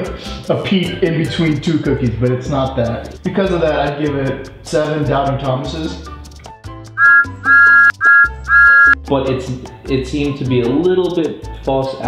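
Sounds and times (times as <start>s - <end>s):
two-note steam whistle: 7.0s - 9.0s.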